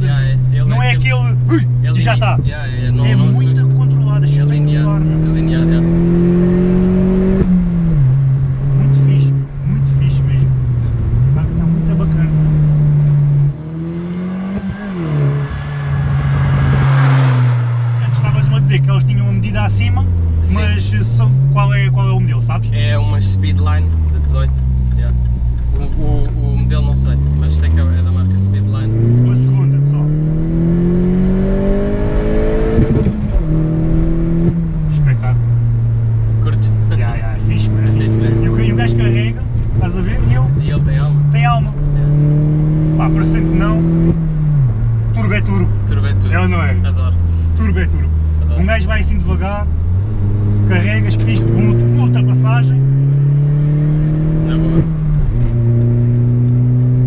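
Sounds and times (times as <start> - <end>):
car engine from inside cabin: 0.0 - 57.0.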